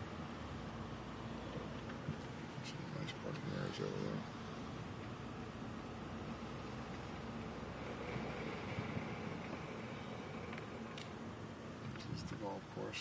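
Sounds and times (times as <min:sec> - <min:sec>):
car engine and tyre noise: 0:00.0 - 0:13.0.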